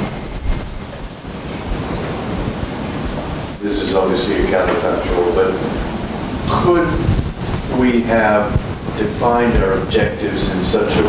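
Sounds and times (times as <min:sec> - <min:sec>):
rushing noise with low rumble: 0:00.0 - 0:11.0.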